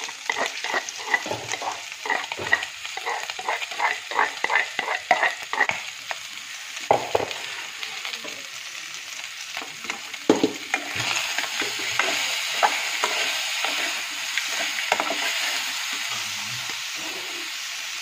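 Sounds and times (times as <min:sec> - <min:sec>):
metal spoon scraping a pan: 0:00.0 - 0:05.8, 0:10.7 - 0:17.6
meat sizzling in a pan: 0:00.0 - 0:18.0.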